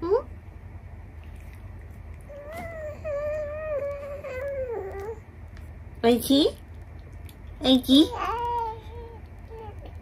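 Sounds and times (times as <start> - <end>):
baby whining: 2.3 - 5.2, 8.1 - 10.0.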